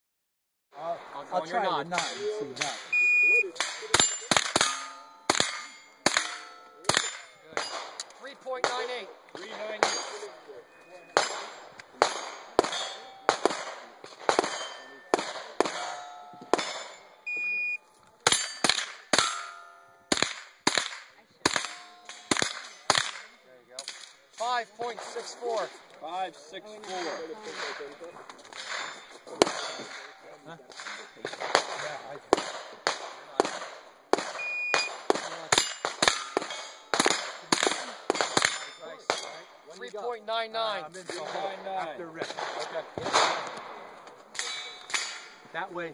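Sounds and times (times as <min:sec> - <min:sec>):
people talking: 0:00.8 - 0:04.9, 0:06.2 - 0:11.2, 0:24.4 - 0:28.3, 0:29.2 - 0:32.3, 0:37.5 - 0:44.8, 0:45.5 - 0:45.9
steel targets ringing: 0:02.9 - 0:07.9, 0:09.8 - 0:13.4, 0:14.3 - 0:17.2, 0:18.3 - 0:20.1, 0:35.6 - 0:37.1, 0:38.0 - 0:39.4
rapid gunshots: 0:11.2 - 0:16.9, 0:20.1 - 0:24.0, 0:30.7 - 0:39.4.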